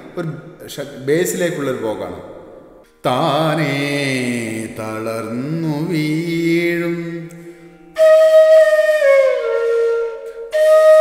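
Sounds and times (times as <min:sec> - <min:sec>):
man singing unaccompanied: 0:03.0 - 0:07.4.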